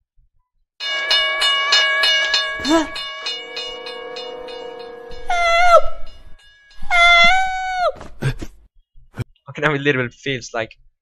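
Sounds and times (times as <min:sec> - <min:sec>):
railroad crossing bell ringing: 0:00.8 - 0:07.8.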